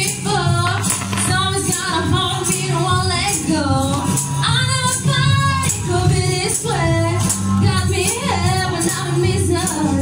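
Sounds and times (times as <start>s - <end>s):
instrumental accompaniment with bass: 0.0s - 10.0s.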